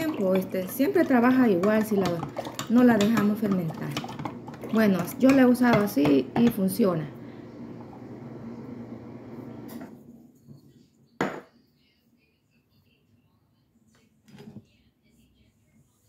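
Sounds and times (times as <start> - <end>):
spoon stirring in glass cup: 0.0 - 6.8
kitchen bowls clattering: 0.0 - 6.9.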